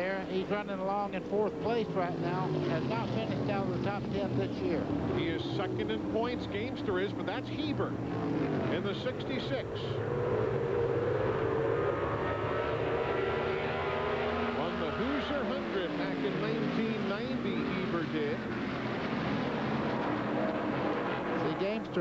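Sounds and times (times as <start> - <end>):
race car engines droning: 0.0 - 22.0
race cars passing by: 0.0 - 22.0.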